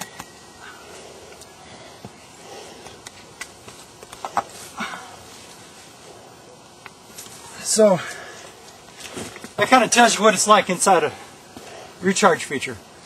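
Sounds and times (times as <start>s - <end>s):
rustling of dry leaves and stones: 0.0s - 12.6s.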